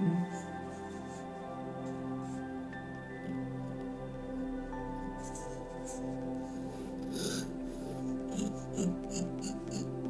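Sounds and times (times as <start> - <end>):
soft background music: 0.0 - 10.0
pen scratching on paper: 8.3 - 10.0.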